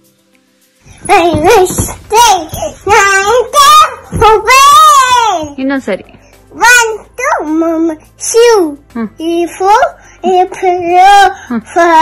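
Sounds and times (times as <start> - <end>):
toddler singing: 0.9 - 5.6, 6.5 - 12.0.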